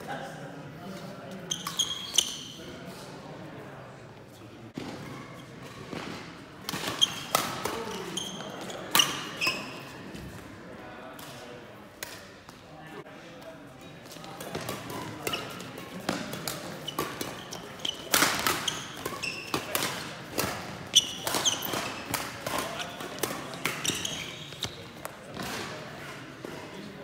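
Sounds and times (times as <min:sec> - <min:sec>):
shoe squeaks on court floor: 0:01.0 - 0:02.7, 0:06.8 - 0:10.0, 0:14.9 - 0:20.0, 0:20.9 - 0:25.0
racket hitting shuttlecock: 0:05.9 - 0:08.0, 0:14.4 - 0:25.7.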